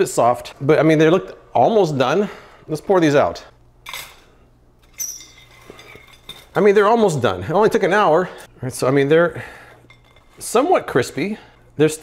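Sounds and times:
light metallic clink and rattle: 4.8 - 6.6.

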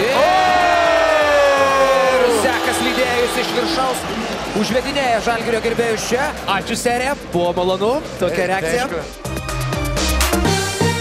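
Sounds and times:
crowd noise: 0.0 - 9.2
voice holding long high note: 1.9 - 4.6.

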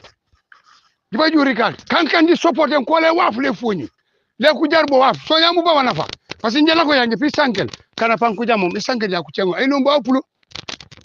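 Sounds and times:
person talking: 1.1 - 10.3.

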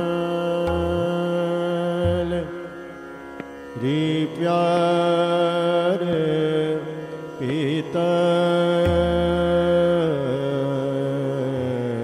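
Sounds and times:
man singing long notes: 0.0 - 2.8, 3.8 - 12.0.

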